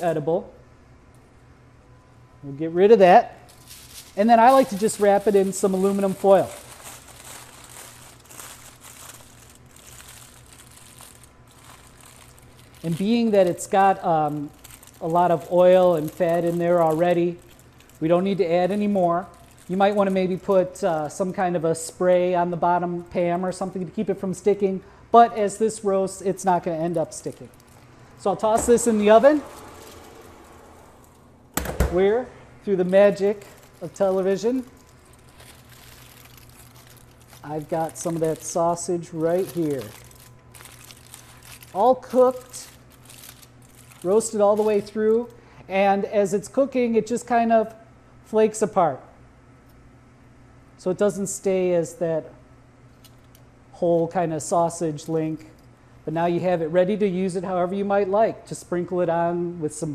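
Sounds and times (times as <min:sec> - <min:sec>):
steady low hum: 0:00.0 - 0:59.9
aluminum foil crinkling: 0:03.5 - 0:21.2, 0:25.6 - 0:30.6, 0:32.7 - 0:45.3.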